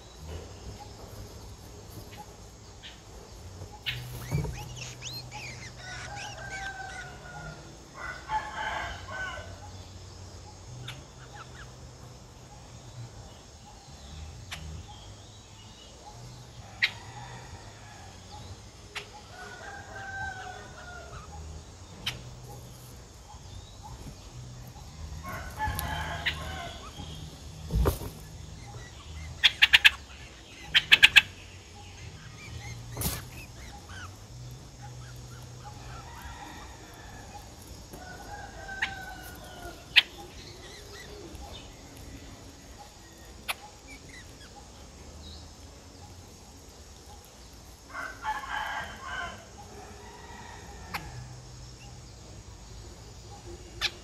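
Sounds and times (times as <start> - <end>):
birds calling: 0.0 - 54.0
distant rooster crowing: 4.2 - 9.7, 16.6 - 18.4, 19.2 - 21.6, 25.0 - 28.0, 35.6 - 41.2, 47.9 - 51.4.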